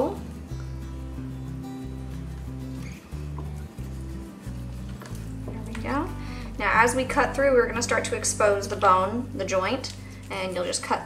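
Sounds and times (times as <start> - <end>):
background music low notes: 0.0 - 11.0.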